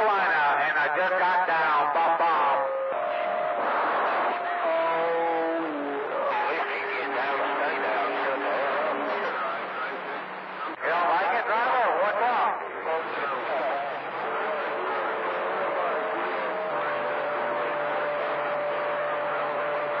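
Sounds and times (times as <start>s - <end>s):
radio static hiss: 5.4s - 20.0s.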